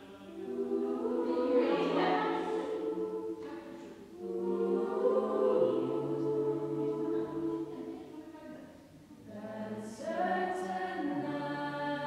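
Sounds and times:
choir singing held chords: 0.0s - 8.2s, 8.8s - 12.0s.

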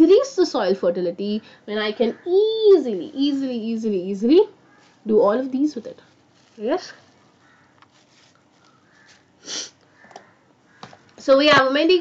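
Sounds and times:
person sniffing: 9.4s - 9.8s.

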